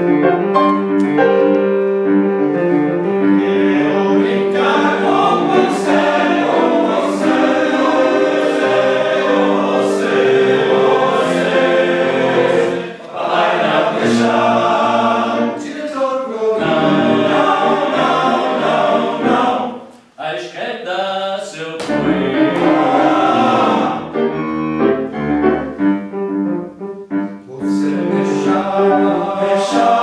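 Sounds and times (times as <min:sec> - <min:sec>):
men's choir singing: 0:03.2 - 0:19.9, 0:21.9 - 0:24.4, 0:27.6 - 0:30.0.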